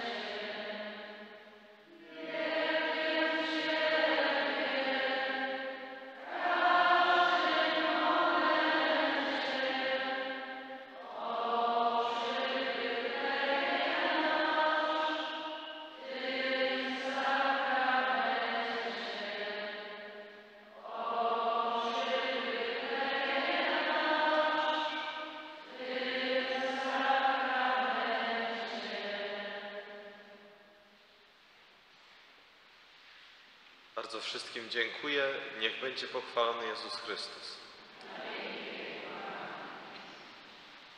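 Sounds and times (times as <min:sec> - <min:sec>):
slow sung chant in church: 0:00.0 - 0:40.9.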